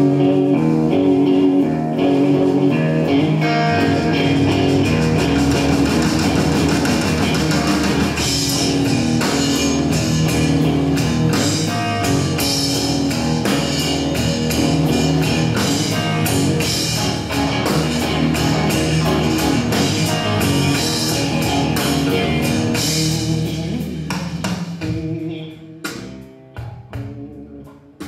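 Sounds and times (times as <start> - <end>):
bass guitar: 0.0 - 28.0
drum kit: 0.0 - 28.0
electric guitar: 0.0 - 28.0.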